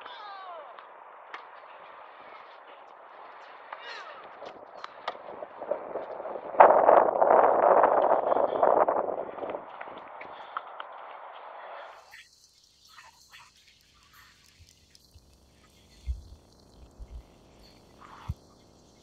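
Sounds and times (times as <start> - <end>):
wind buffeting microphone: 2.0 - 11.6.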